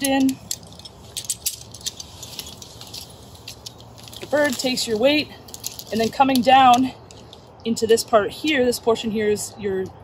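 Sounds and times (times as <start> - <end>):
metal climbing gear clicking: 0.0 - 8.8.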